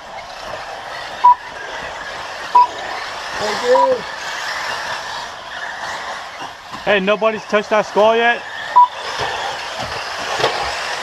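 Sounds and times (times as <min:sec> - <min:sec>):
radio-controlled buggies running: 0:00.0 - 0:11.0.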